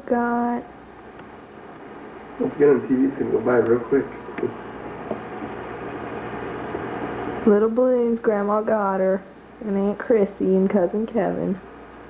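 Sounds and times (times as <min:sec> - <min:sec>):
room hum and hiss: 0:00.0 - 0:12.0.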